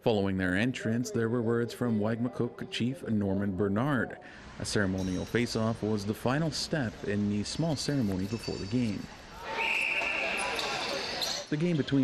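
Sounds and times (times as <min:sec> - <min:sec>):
arena crowd noise: 0:00.0 - 0:12.0
whistle blowing high note: 0:09.5 - 0:11.3.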